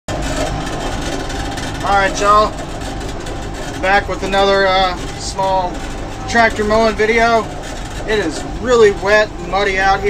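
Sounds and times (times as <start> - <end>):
tractor diesel engine running: 0.1 - 10.0.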